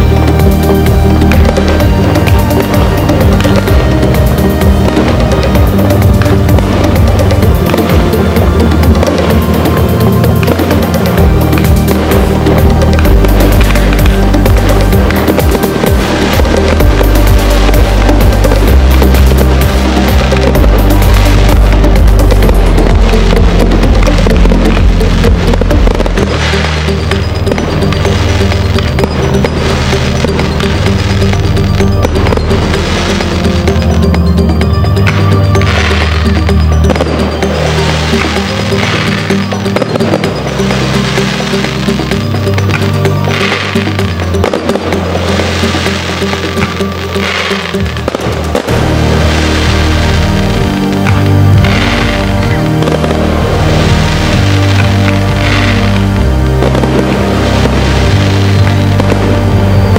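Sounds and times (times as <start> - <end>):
fireworks bursting and crackling: 0.0 - 59.9
music soundtrack: 0.0 - 59.9.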